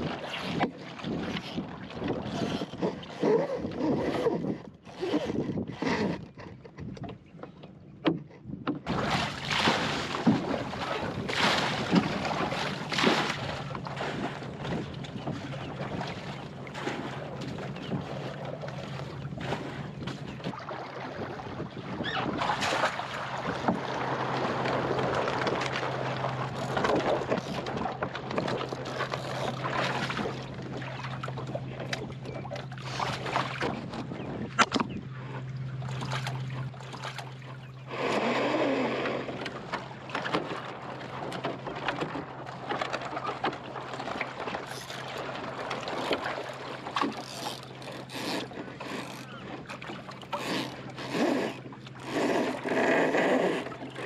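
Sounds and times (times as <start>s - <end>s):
wind on microphone: 0.0s - 7.3s, 8.5s - 35.3s
water lapping against boat hull: 0.0s - 54.0s
knocks and clicks from gear: 4.0s - 8.9s, 34.6s - 35.0s.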